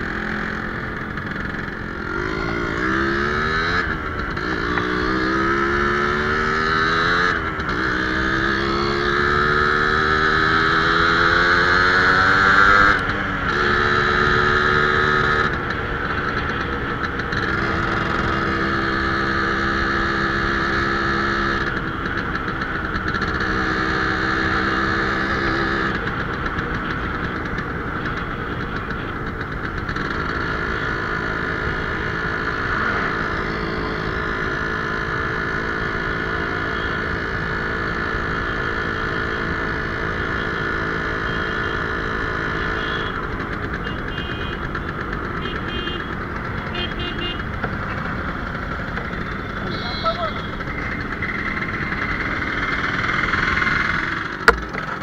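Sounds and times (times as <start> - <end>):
motorcycle engine shifting gears: 0.0 - 55.0.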